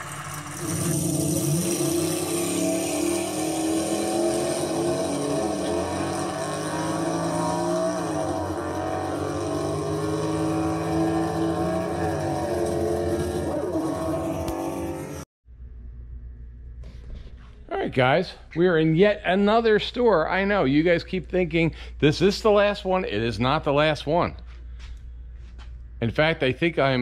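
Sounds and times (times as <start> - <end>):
car engine running: 0.0 - 15.3.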